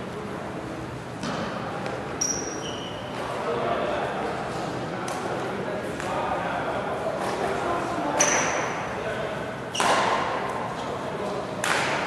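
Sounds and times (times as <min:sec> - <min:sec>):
shoes squeaking on court: 0:02.2 - 0:03.3
shuttlecock hit: 0:11.6 - 0:12.0.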